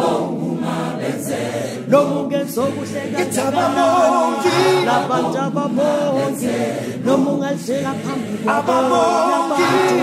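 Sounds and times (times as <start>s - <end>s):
mixed choir singing in harmony: 0.0s - 10.0s.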